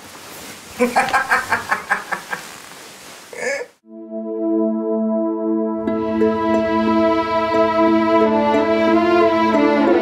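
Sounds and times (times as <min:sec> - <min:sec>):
woman giggling: 0:00.8 - 0:02.5, 0:03.4 - 0:03.8
soft ambient synthesizer music: 0:03.8 - 0:10.0.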